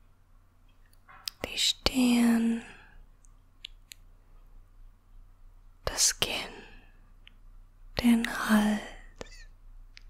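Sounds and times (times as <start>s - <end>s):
woman whispering: 1.3s - 3.0s, 5.8s - 7.0s, 8.0s - 9.5s.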